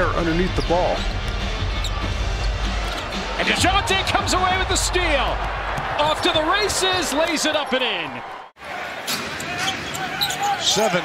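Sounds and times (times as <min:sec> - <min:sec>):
music playing: 0:00.0 - 0:07.2.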